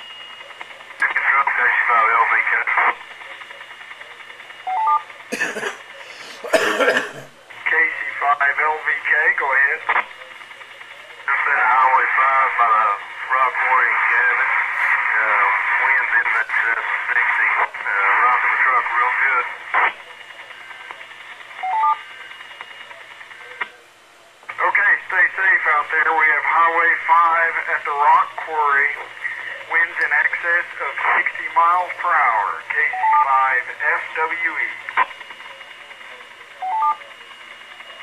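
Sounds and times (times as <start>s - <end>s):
voices over two-way radio: 0.2s - 23.8s, 24.5s - 38.0s
radio clicks: 0.5s - 5.3s, 9.2s - 12.6s, 14.0s - 23.8s, 24.5s - 37.9s.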